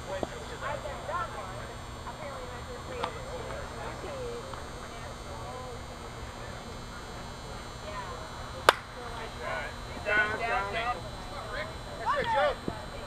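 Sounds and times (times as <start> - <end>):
softball bat hitting ball: 8.6 - 9.1.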